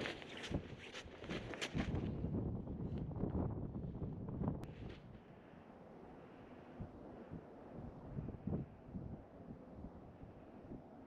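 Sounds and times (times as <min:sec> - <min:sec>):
wind buffeting microphone: 0:00.0 - 0:04.9, 0:06.8 - 0:10.9.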